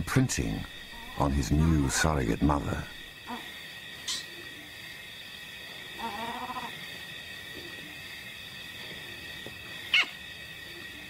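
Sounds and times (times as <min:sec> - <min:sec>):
night insects chirring: 0:00.0 - 0:11.0.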